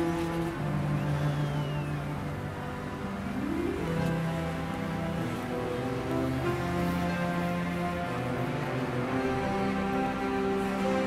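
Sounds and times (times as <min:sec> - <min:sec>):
slow background music: 0:00.0 - 0:11.0.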